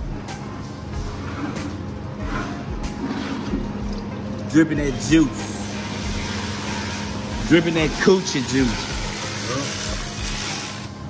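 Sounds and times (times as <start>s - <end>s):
coolant pouring and dripping: 3.0s - 10.9s.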